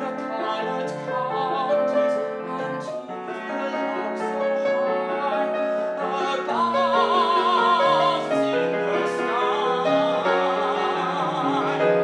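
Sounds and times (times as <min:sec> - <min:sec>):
piano accompaniment: 0:00.0 - 0:12.0
tenor singing: 0:00.0 - 0:12.0.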